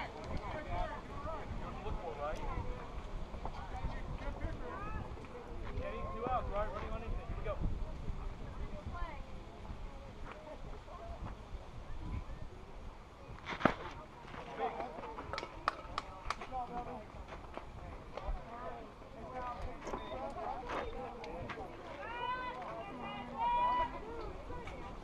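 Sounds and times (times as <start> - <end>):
spectators chattering: 0.0 - 25.0.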